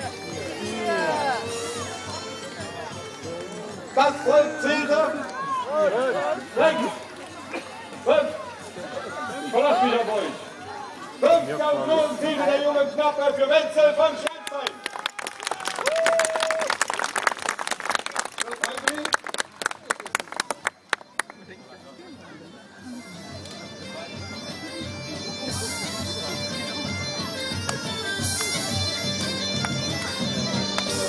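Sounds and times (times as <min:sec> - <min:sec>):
bagpipe music: 0:00.0 - 0:13.8, 0:20.7 - 0:31.0
crowd applauding: 0:14.2 - 0:21.4.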